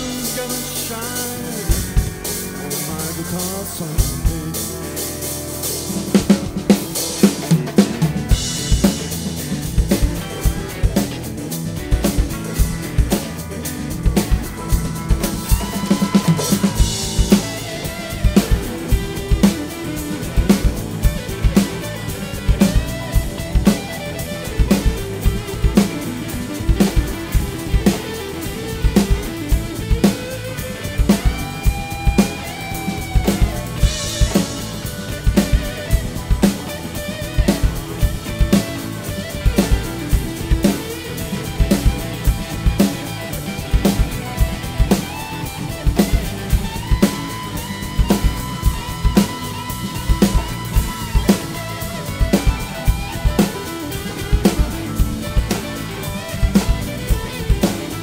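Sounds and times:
drum kit playing rock groove: 0:00.0 - 0:58.0
recorded band music: 0:00.0 - 0:58.0.

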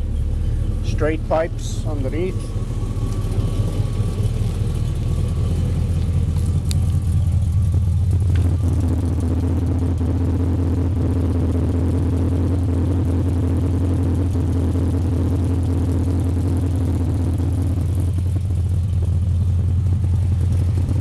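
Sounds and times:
engine idling low rumble: 0:00.0 - 0:21.0.

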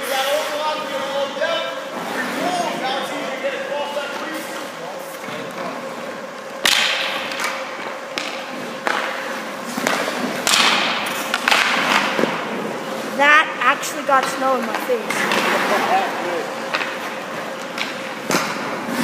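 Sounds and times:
steady hum: 0:00.0 - 0:19.0
pucks cracking off sticks: 0:06.6 - 0:13.0, 0:13.7 - 0:19.0
skate blades scraping ice: 0:13.8 - 0:19.0.

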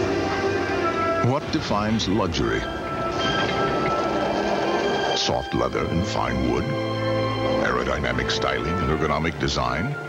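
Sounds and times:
rushing rumbling noise: 0:00.0 - 0:06.6
synth background music: 0:00.0 - 0:10.0.

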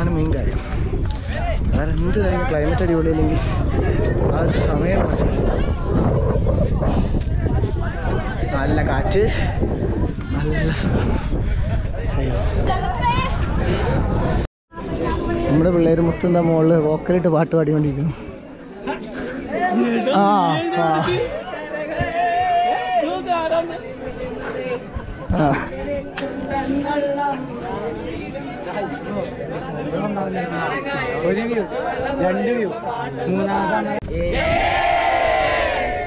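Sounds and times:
people talking outdoors: 0:00.0 - 0:36.0
group cheering: 0:34.2 - 0:36.0.

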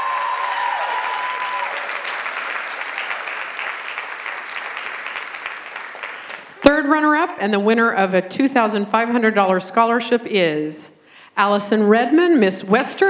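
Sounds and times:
person cheering: 0:00.0 - 0:02.2
audience applause: 0:00.0 - 0:06.6.

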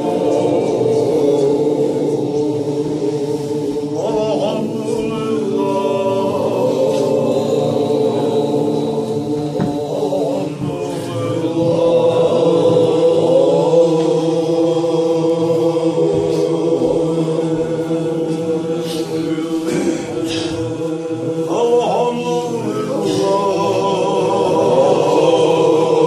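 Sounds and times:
men chanting together: 0:00.0 - 0:26.0.

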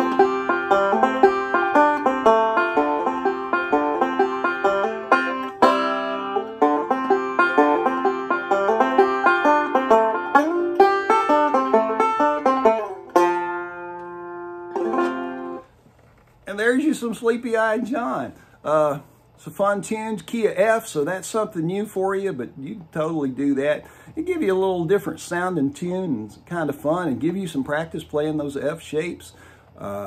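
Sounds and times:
fingerpicked banjo: 0:00.0 - 0:15.7.

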